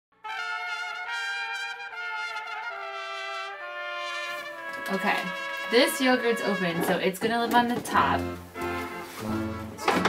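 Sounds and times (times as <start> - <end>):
trumpets holding sustained chords: 0.2 - 7.1, 8.0 - 10.0.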